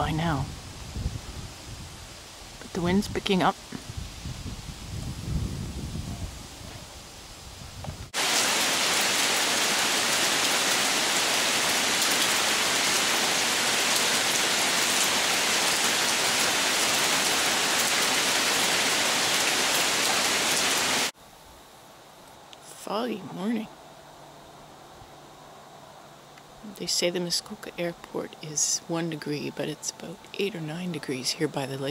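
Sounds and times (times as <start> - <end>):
wind gusting against microphone: 0.0 - 21.6
heavy rain falling: 8.1 - 21.2.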